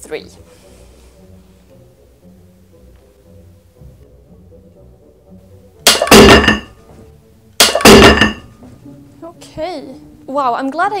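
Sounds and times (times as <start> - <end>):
metal weight plates clanging: 5.9 - 6.8, 7.6 - 8.5.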